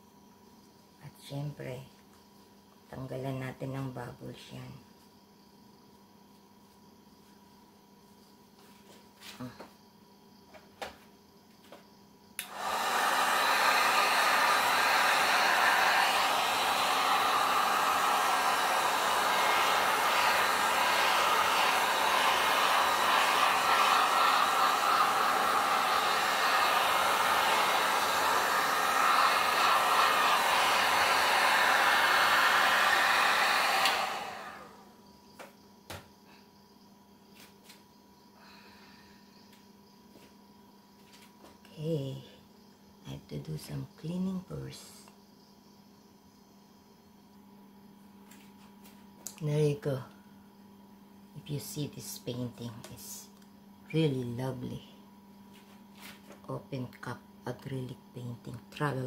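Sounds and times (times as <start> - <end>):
heat gun blowing: 12.4 - 34.8.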